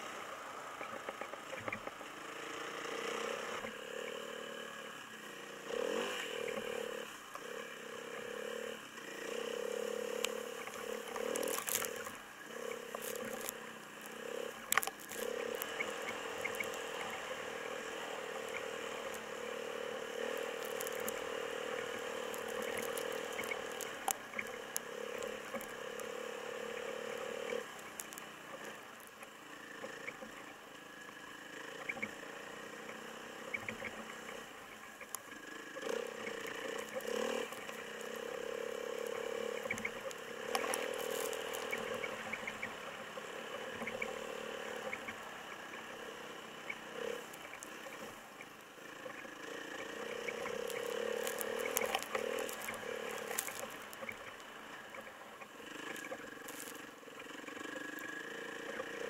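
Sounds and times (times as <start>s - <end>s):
dirt bike engine running: 0.0s - 59.0s
small clicks: 10.1s - 59.0s.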